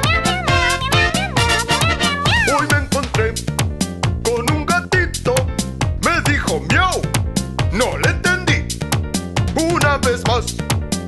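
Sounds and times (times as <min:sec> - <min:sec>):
cartoon cat meow: 0:00.0 - 0:02.6
upbeat cartoon music: 0:00.0 - 0:11.0.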